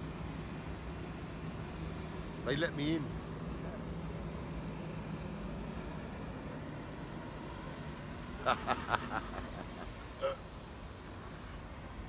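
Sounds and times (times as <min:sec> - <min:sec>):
outdoor city background noise: 0:00.0 - 0:12.0
man laughing: 0:08.4 - 0:10.4.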